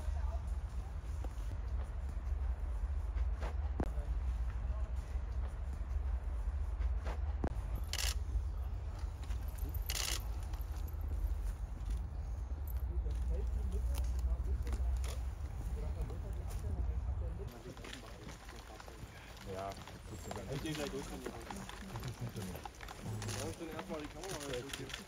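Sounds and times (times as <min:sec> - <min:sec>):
low rumble: 0:00.0 - 0:17.6
faint indistinct voices: 0:00.0 - 0:25.0.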